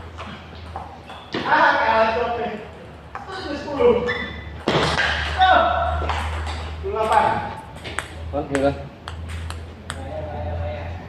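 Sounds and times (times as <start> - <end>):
men talking: 1.3 - 4.4, 5.2 - 9.0, 9.9 - 11.0
table tennis ball clicks: 6.1 - 10.1.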